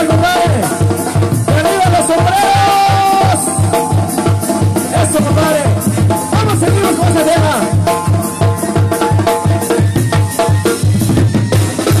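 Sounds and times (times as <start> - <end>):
brass band playing: 0.0 - 12.0
snare and cymbal hits: 0.0 - 12.0.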